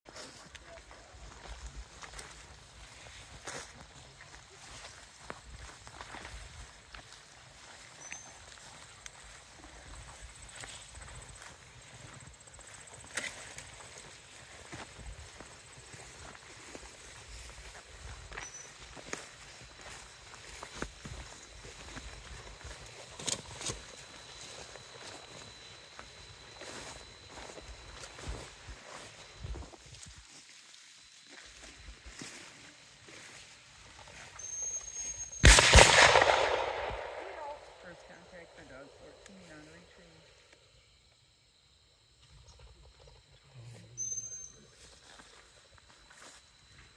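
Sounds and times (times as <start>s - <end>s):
footsteps through dry grass: 0.1s - 39.9s, 44.6s - 46.9s
echoing gunshots: 35.4s - 37.8s.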